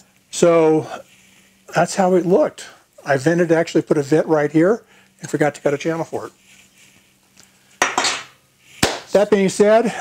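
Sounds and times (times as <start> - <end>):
metal clattering clink: 7.8 - 8.4.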